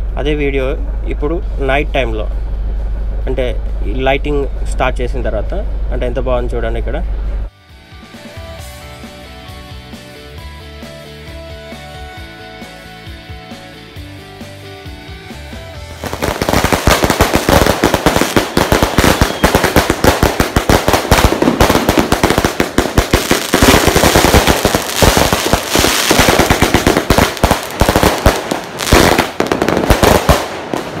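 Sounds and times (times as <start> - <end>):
background music: 7.5 - 19.4
fireworks banging and crackling: 16.0 - 31.0.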